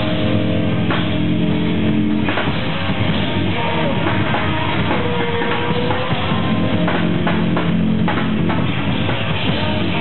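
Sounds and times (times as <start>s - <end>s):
metal band playing: 0.0s - 10.0s.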